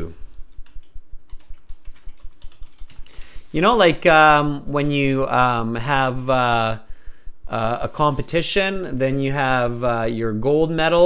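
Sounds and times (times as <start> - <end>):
computer keyboard typing: 0.6 - 3.3.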